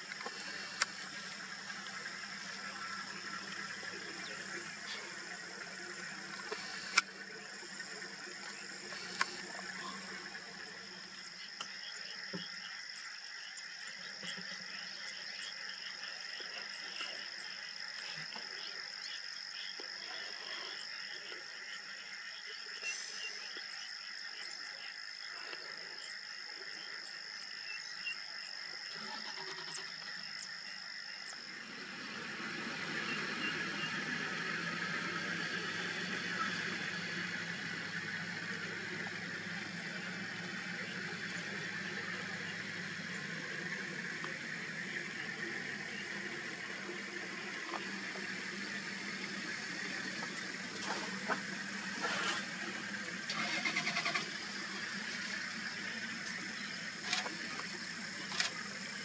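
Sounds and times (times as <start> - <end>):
frogs croaking: 0.0 - 59.0.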